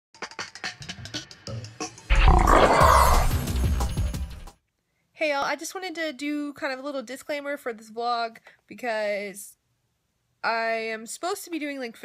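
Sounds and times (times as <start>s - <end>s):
loud roar-like sound effect: 2.1s - 3.4s.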